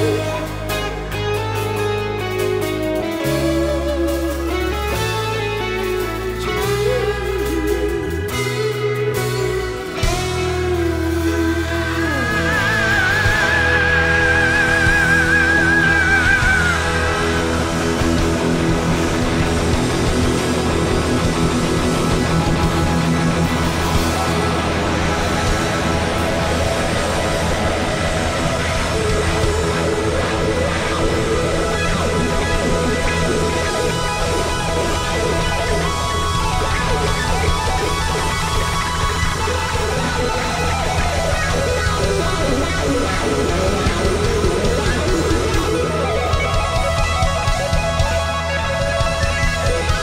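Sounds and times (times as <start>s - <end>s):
electric guitar: 0.0s - 50.0s
rock band playing: 0.0s - 50.0s.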